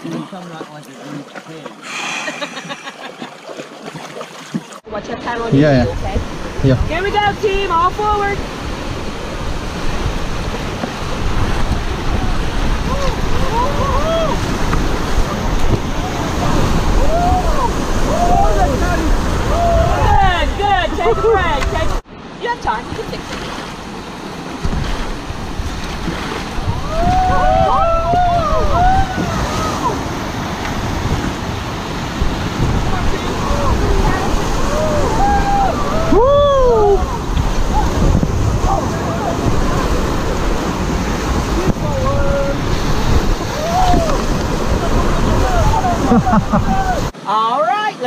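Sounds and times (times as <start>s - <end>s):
whitewater rapids rushing: 0.0s - 48.0s
wind buffeting microphone: 5.7s - 22.0s, 24.6s - 47.1s
people whooping and shouting: 12.9s - 14.4s, 16.9s - 21.6s, 26.7s - 30.0s, 34.6s - 38.0s, 43.5s - 44.3s, 45.3s - 47.1s.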